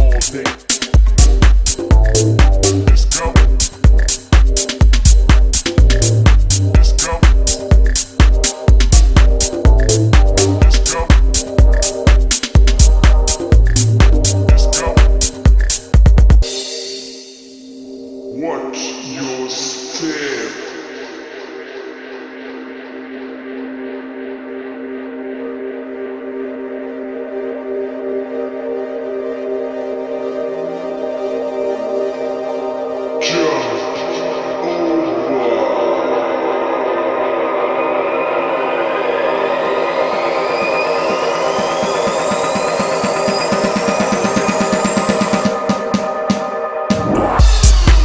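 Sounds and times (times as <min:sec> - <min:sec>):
fast repeated drum hits: 0:00.0 - 0:16.4, 0:46.9 - 0:48.0
sustained synth pad chord: 0:20.6 - 0:47.6.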